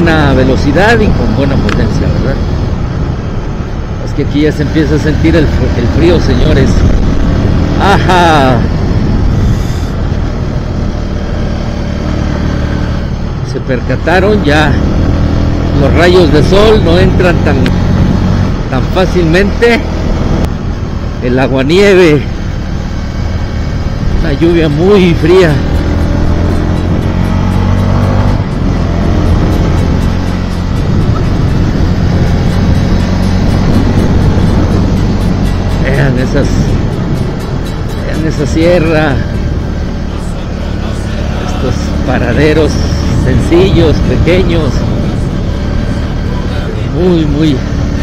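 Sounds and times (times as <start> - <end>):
motorcycle engine running: 0.0 - 48.0
road and wind rush: 0.0 - 48.0.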